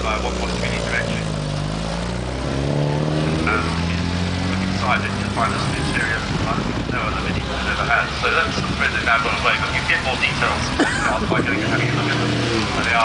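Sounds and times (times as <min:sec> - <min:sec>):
small car engine revving: 0:00.0 - 0:07.4, 0:09.4 - 0:13.0.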